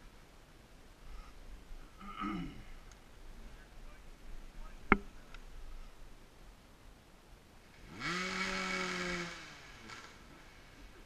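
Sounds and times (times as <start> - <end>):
dirt bike engine revving: 7.8 - 11.0.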